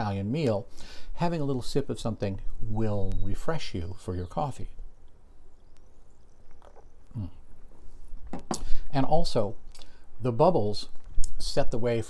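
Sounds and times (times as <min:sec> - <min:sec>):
sipping and swallowing water: 0:06.4 - 0:08.9.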